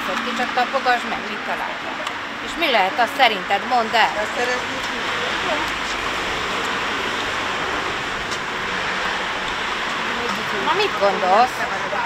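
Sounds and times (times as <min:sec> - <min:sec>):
steady rushing hiss: 0:01.0 - 0:12.0.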